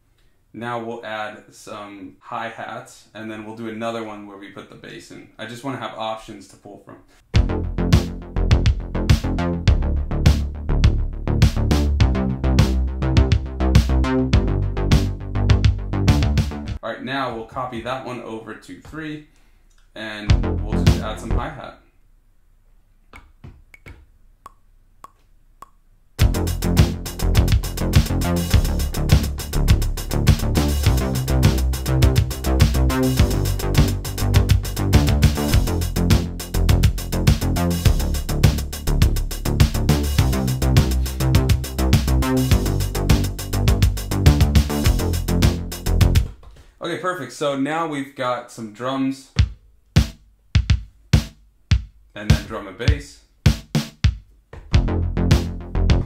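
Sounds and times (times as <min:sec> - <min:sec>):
drum machine beat: 0:07.3 - 0:16.8, 0:20.3 - 0:21.4, 0:26.2 - 0:46.6, 0:49.4 - 0:56.0.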